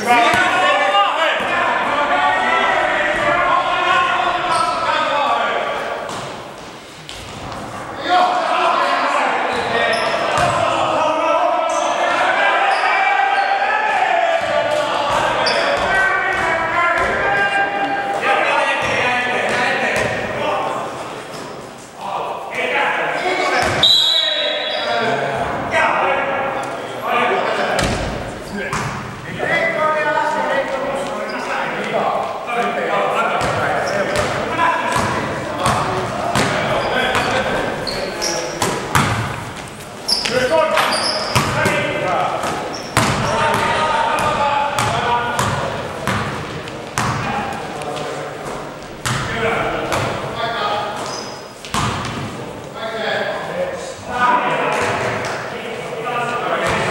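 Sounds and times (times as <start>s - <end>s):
players calling out: 0.0s - 6.7s, 7.3s - 51.7s
basketball bouncing on hard court: 10.4s - 10.6s, 38.6s - 39.4s, 42.4s - 46.4s, 47.0s - 47.3s, 49.0s - 49.3s, 51.6s - 52.2s.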